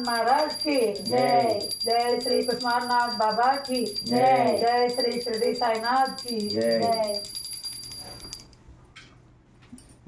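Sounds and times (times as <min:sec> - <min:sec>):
brass hand bell ringing: 0:00.0 - 0:08.5.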